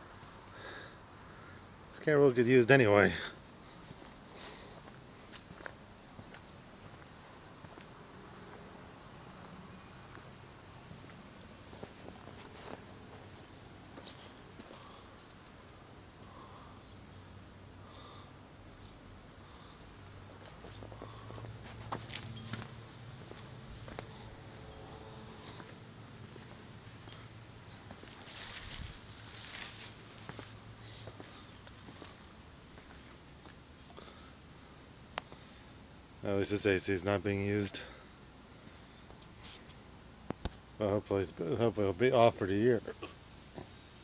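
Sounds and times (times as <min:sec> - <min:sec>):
high-pitched insect drone: 0:00.0 - 0:34.4, 0:35.3 - 0:40.1, 0:40.8 - 0:44.0
insect chirp: 0:00.0 - 0:44.0
footsteps on garden path: 0:03.8 - 0:15.5, 0:20.2 - 0:24.6, 0:25.2 - 0:34.2.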